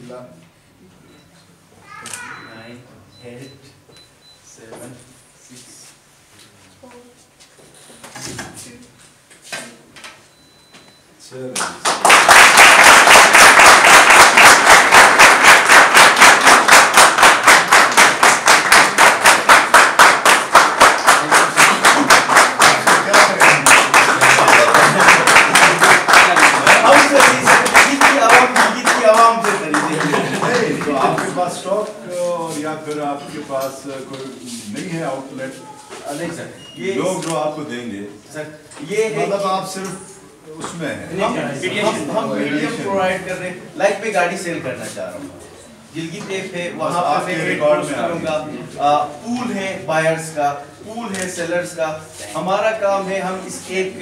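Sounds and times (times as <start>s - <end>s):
audience clapping in a steady beat: 11.5s - 31.5s
room murmur: 11.5s - 54.0s
overlapping voices: 11.6s - 32.5s.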